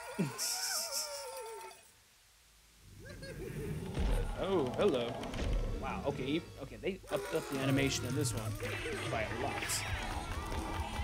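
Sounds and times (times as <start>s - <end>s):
cartoon dogs screaming: 0.0s - 1.9s, 7.1s - 11.0s.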